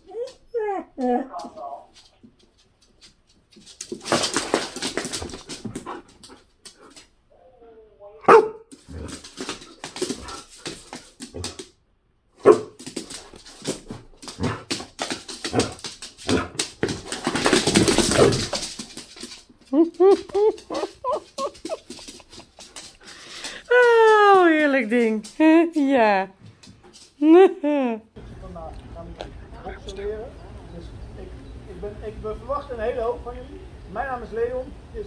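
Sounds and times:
dogs barking: 8.3 - 8.7, 12.4 - 12.8
rustling and clicking movement: 12.7 - 27.2
dog whining: 19.8 - 22.0.

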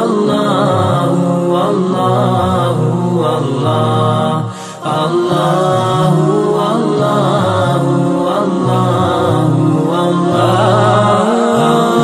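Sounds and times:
voices chanting devotional music: 0.0 - 12.0.

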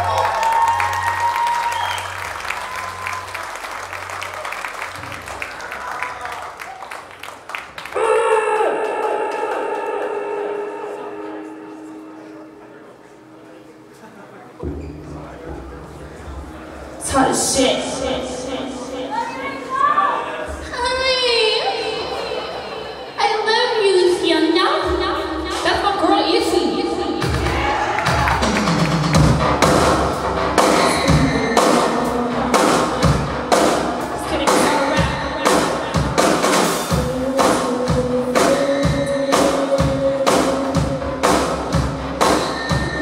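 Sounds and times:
amplified band chord ringing: 8.0 - 13.9
guitar and keyboard chords: 8.2 - 23.2
drums hitting hard: 14.6 - 18.8, 27.2 - 43.0.

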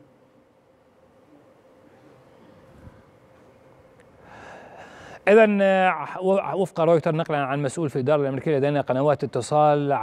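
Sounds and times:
man breathing in: 4.2 - 5.2.

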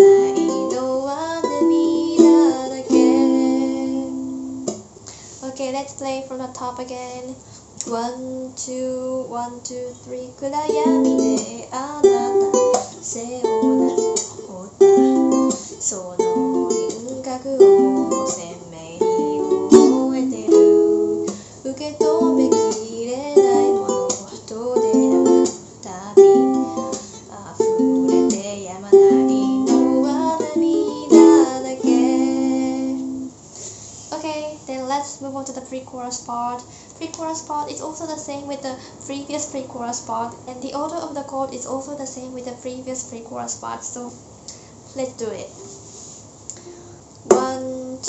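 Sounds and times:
ukulele strumming: 0.0 - 4.8, 10.5 - 33.3.

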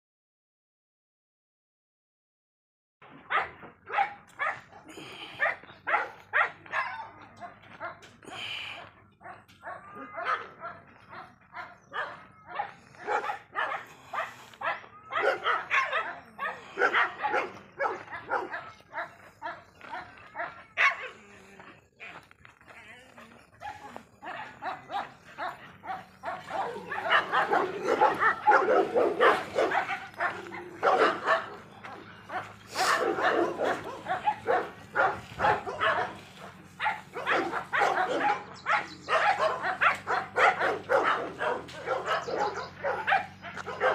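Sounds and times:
dog barking and yelping: 3.3 - 8.5, 9.2 - 21.2, 23.6 - 43.9.

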